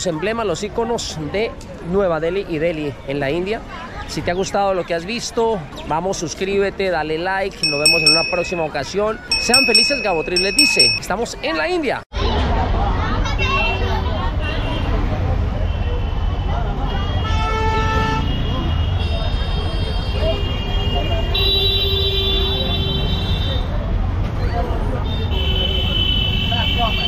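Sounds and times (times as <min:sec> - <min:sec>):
street traffic rumble: 0:12.2 - 0:27.0.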